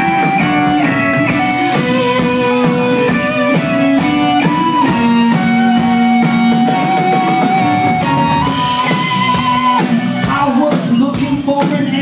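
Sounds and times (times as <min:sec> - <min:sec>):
electric guitar melody: 0:00.0 - 0:12.0
live rock band playing: 0:00.0 - 0:12.0.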